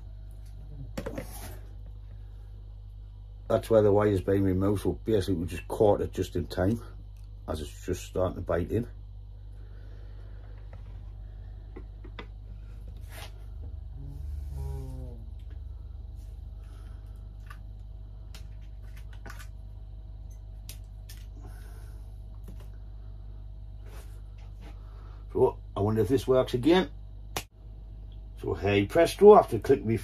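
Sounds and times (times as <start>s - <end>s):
steady low hum: 0.0s - 30.0s.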